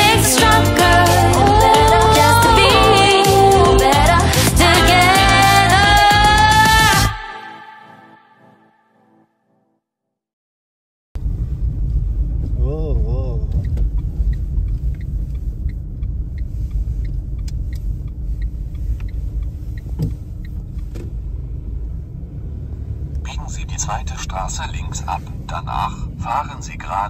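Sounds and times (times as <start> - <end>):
road and engine rumble: 0.0 - 6.8, 11.2 - 27.0
sat-nav voice giving directions: 23.2 - 27.0.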